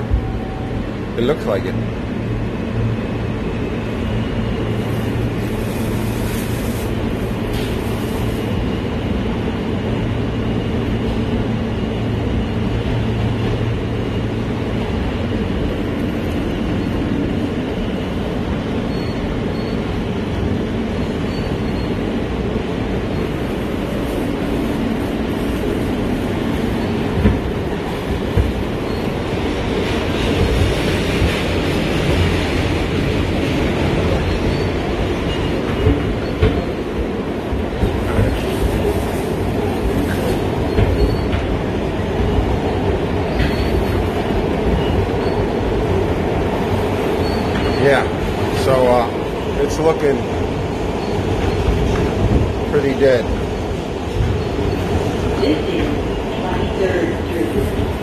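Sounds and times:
subway train wheels rumbling: 0:00.0 - 0:58.0.

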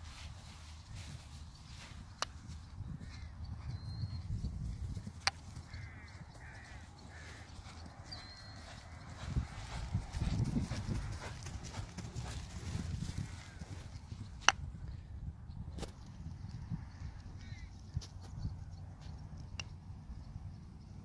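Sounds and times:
pony hoofbeats on grass: 0:00.0 - 0:14.5.

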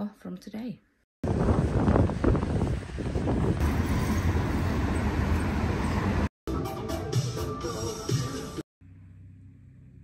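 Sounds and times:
traffic rumble: 0:01.3 - 0:06.3.

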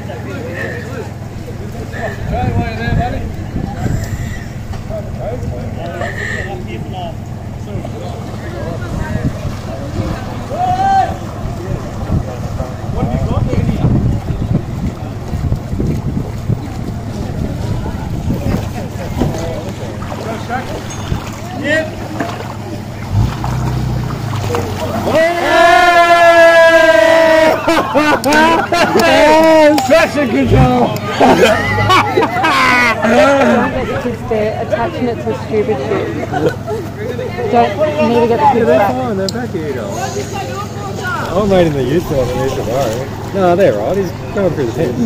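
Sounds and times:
low outdoor rumble: 0:00.0 - 0:45.0
people chatting in background: 0:00.0 - 0:45.0.

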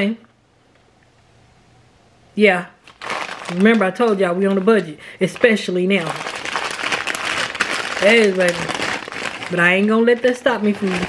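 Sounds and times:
packaging crinkling: 0:02.8 - 0:11.0.

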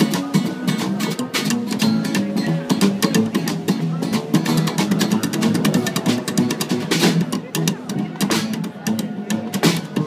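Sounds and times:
strummed guitars: 0:00.0 - 0:10.0
upright bass walking: 0:00.0 - 0:10.0.

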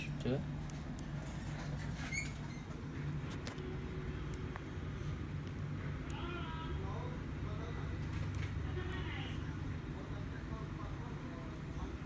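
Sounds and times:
steady low hum: 0:00.0 - 0:12.0
high-pitched squeak: 0:01.9 - 0:02.8.

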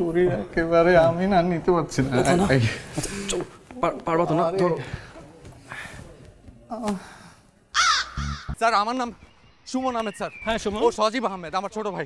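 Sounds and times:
crow cawing: 0:07.7 - 0:08.6.

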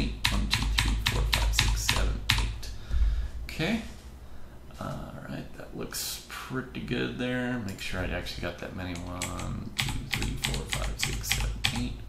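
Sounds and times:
computer keyboard keystrokes: 0:00.2 - 0:02.6, 0:08.9 - 0:11.9.

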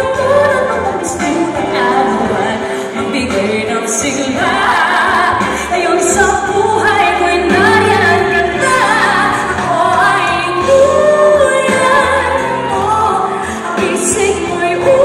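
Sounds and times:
backing music with bass line: 0:00.0 - 0:15.0
woman singing pop song: 0:00.0 - 0:15.0.

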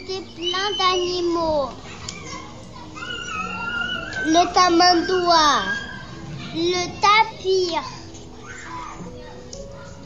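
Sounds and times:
faint children's voices: 0:00.0 - 0:10.0.

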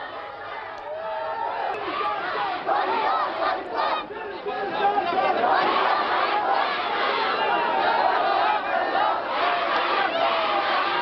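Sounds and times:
crowd of men shouting slogans: 0:00.0 - 0:11.0.

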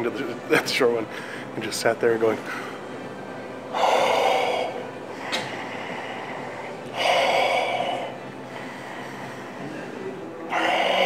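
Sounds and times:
man breathing heavily through nose: 0:01.1 - 0:01.6, 0:03.7 - 0:11.0.

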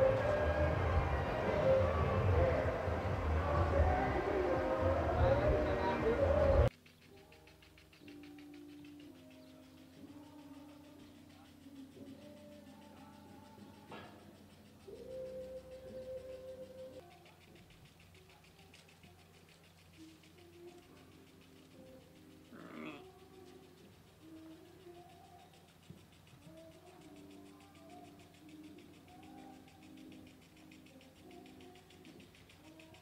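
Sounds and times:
faint bird calls: 0:06.4 - 0:33.0
sheep bleating: 0:22.5 - 0:23.2.

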